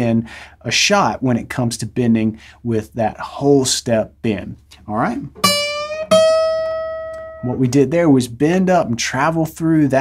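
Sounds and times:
acoustic guitar notes plucked: 5.0 - 8.1.

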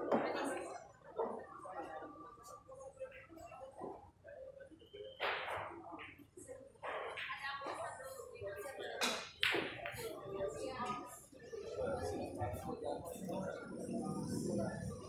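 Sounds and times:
background chatter: 0.0 - 15.0.

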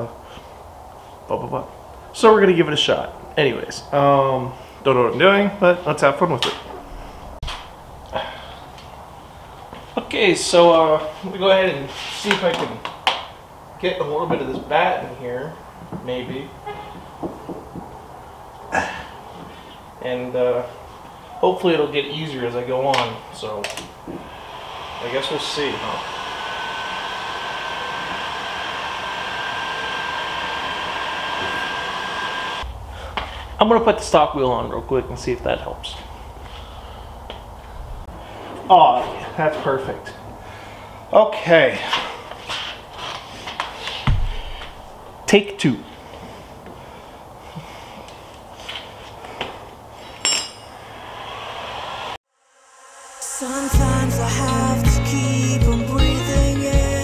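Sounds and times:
heat gun fan blowing: 23.4 - 41.0.

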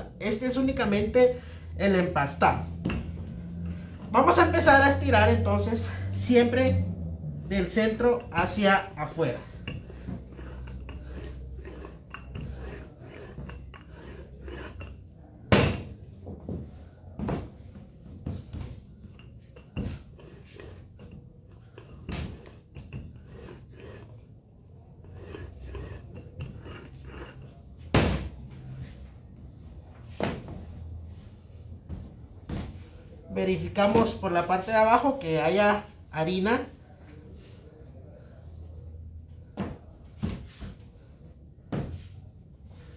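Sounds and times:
rolling pin rumbling on dough: 7.7 - 15.0, 18.3 - 28.3.

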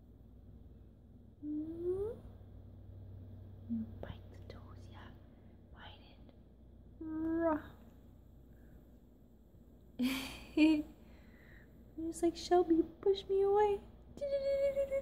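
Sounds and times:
woman humming: 1.4 - 2.3, 3.7 - 4.0, 7.0 - 7.8, 14.2 - 15.0
woman whispering: 3.7 - 6.4.

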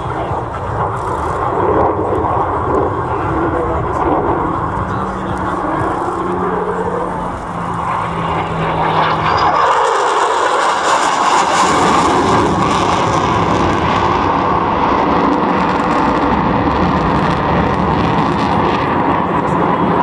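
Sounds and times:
jet engine roar overhead: 0.0 - 20.0.

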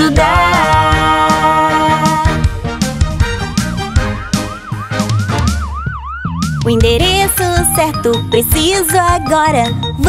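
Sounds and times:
children's song with drum beat: 0.0 - 5.7, 6.4 - 10.0
cartoon ambulance siren: 3.8 - 8.4.

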